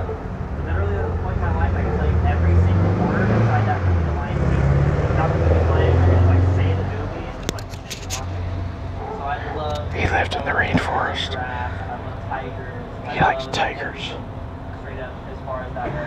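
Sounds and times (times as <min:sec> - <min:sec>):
people talking indistinctly: 0:00.8 - 0:16.0.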